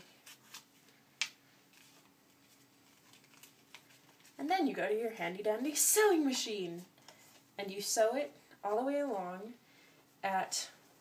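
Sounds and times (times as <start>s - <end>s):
paper rustling against fabric: 1.6s - 4.5s.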